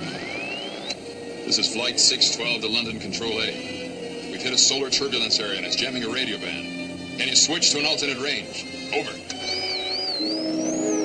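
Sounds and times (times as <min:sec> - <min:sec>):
high wavering synthesizer tone: 0:00.0 - 0:04.1, 0:09.4 - 0:11.0.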